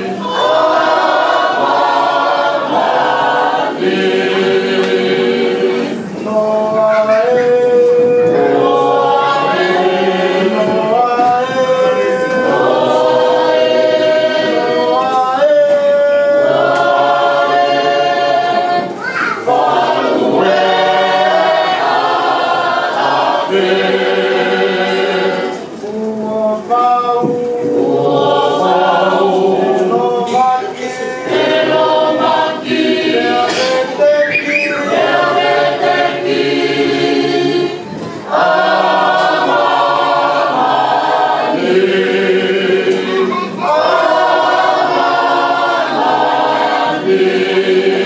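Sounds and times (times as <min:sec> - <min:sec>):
choir singing a hymn: 0:00.0 - 0:48.0.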